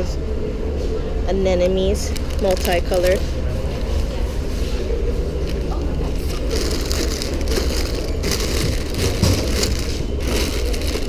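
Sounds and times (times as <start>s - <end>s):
steady low rumble: 0.0s - 11.0s
cellophane crinkling: 2.1s - 4.0s, 5.4s - 11.0s.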